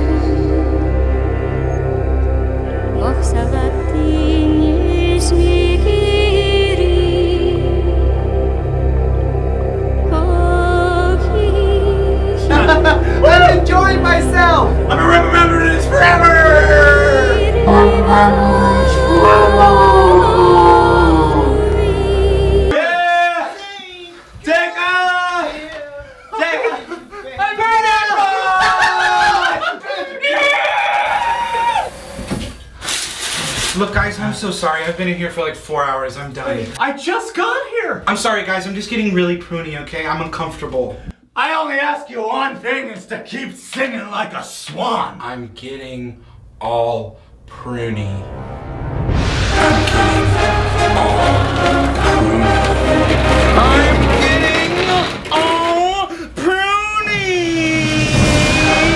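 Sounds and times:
music: 0:00.0 - 0:22.8, 0:47.8 - 0:55.6, 0:57.5 - 0:58.9
person singing long sliding notes: 0:00.0 - 0:22.8, 0:49.4 - 0:55.2
voice holding a high note: 0:12.2 - 0:22.7.

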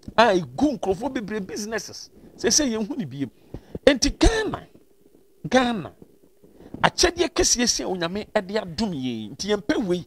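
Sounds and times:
man talking: 0:00.1 - 0:04.7, 0:05.4 - 0:06.0, 0:06.8 - 0:10.0.

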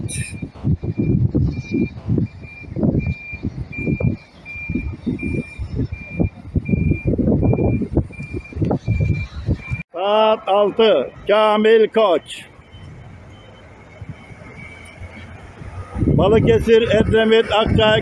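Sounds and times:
reversing alarm beeping: 0:00.0 - 0:09.8, 0:12.2 - 0:16.2
bus engine rumbling: 0:00.0 - 0:18.0.

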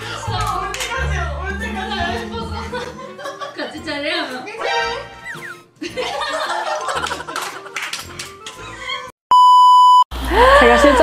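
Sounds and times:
background music: 0:00.0 - 0:09.1
women laughing: 0:01.6 - 0:03.9, 0:05.8 - 0:07.8
high test-tone beep: 0:09.3 - 0:10.0.

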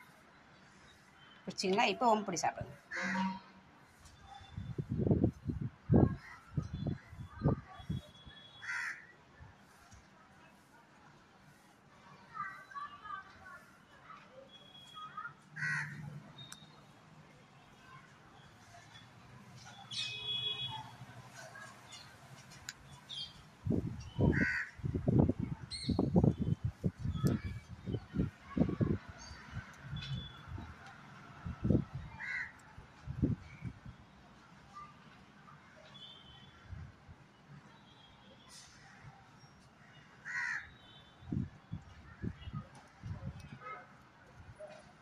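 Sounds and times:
crow cawing: 0:08.6 - 0:09.1, 0:15.6 - 0:16.0, 0:24.3 - 0:24.8, 0:32.2 - 0:32.5, 0:40.2 - 0:40.7.

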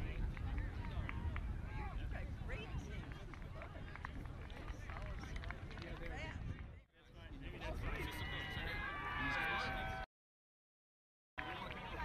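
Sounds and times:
wind rumble on microphone: 0:00.0 - 0:09.0
people shouting and calling: 0:08.2 - 0:10.1.

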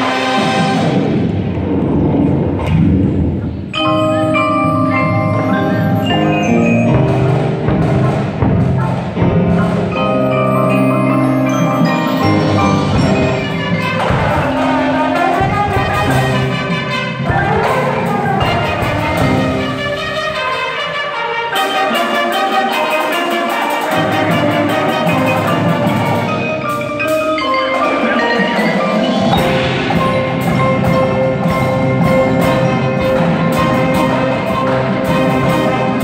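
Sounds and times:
marimba ensemble playing: 0:00.0 - 0:01.2, 0:03.2 - 0:36.0.

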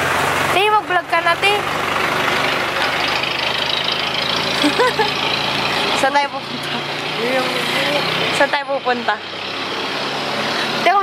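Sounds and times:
street noise: 0:00.0 - 0:11.0
vehicle engine idling: 0:00.0 - 0:11.0.

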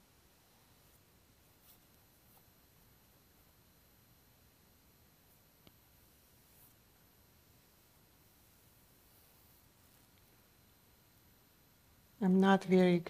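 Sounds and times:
faint brush rustle on paper: 0:00.2 - 0:03.6, 0:05.2 - 0:10.6.

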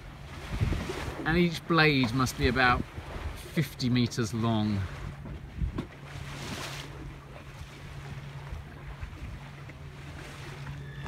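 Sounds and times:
wind on microphone: 0:00.0 - 0:01.4, 0:02.3 - 0:03.5, 0:04.8 - 0:07.8
water rushing past hull: 0:00.0 - 0:11.0.

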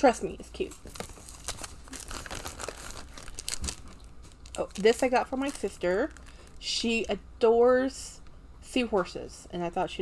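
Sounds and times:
plastic bag crinkling: 0:00.9 - 0:06.6.

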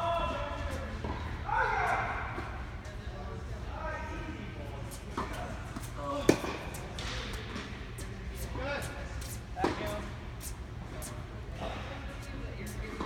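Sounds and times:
voices in background: 0:00.0 - 0:13.0.

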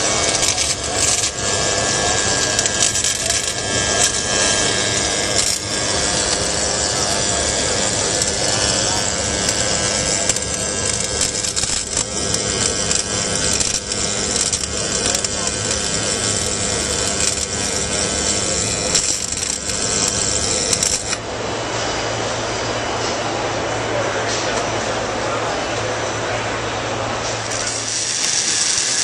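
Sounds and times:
welding arc crackling: 0:00.0 - 0:21.2, 0:27.2 - 0:29.0
indoor crowd chatter: 0:00.0 - 0:29.0.

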